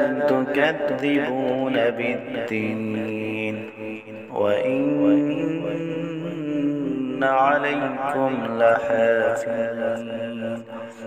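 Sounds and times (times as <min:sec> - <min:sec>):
person reciting in a melodic voice: 0:00.0 - 0:11.0.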